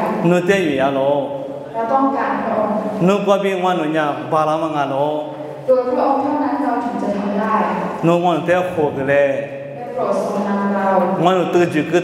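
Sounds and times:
man praying into a microphone: 0:00.0 - 0:01.6, 0:02.9 - 0:05.4, 0:07.9 - 0:09.6, 0:11.2 - 0:12.0.

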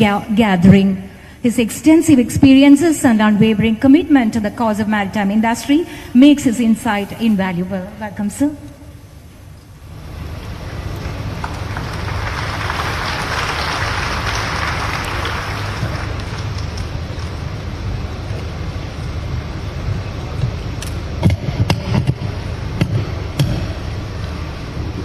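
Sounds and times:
low steady hum: 0:00.0 - 0:25.0
audience applause: 0:11.0 - 0:17.3.

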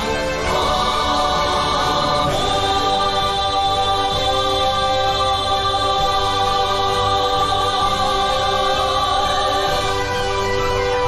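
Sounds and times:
mixed choir singing: 0:00.0 - 0:11.0.

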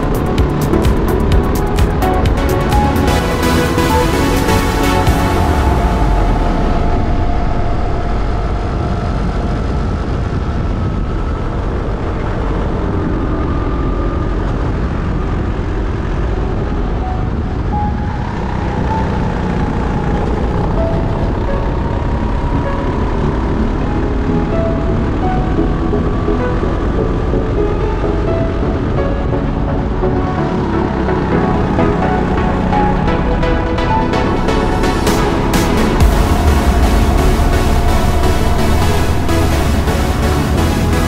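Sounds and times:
music: 0:00.0 - 0:41.0.

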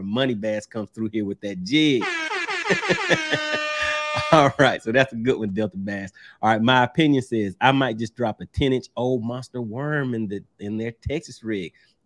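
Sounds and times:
horn-like tone gliding down: 0:02.0 - 0:04.6
rhythmic laughter: 0:02.2 - 0:04.7.

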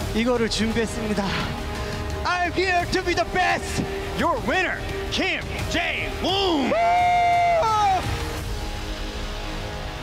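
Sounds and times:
man speaking into a microphone: 0:00.0 - 0:06.8
background music: 0:00.0 - 0:10.0.

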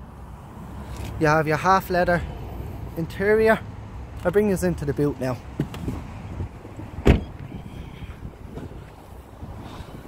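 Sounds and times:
low rumble of outdoor air: 0:00.0 - 0:10.0
car door shutting: 0:07.0 - 0:07.5.

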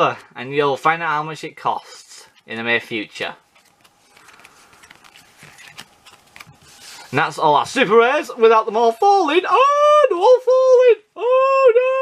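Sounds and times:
card-on-card rustles: 0:02.2 - 0:07.2.

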